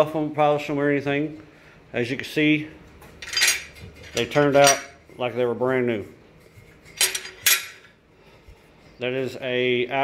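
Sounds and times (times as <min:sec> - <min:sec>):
metal parts clanking on steel table: 0:03.2 - 0:05.0, 0:06.9 - 0:07.9.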